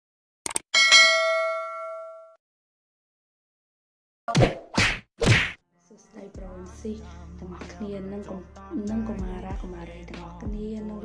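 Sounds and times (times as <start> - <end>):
bright metallic bell ding: 0.8 - 2.4.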